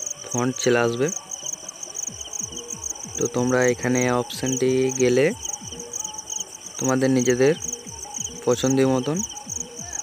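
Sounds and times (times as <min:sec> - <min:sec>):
crickets chirping: 0:00.0 - 0:10.0
man speaking: 0:03.2 - 0:05.4, 0:08.4 - 0:10.0.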